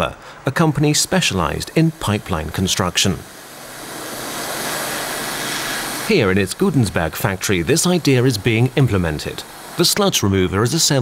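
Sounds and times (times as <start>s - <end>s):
welding arc hissing: 0.8s - 10.2s.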